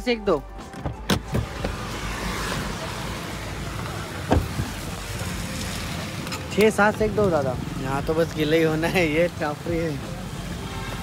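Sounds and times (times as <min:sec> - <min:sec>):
rain hissing: 0:01.4 - 0:11.0
thump: 0:04.3 - 0:04.7.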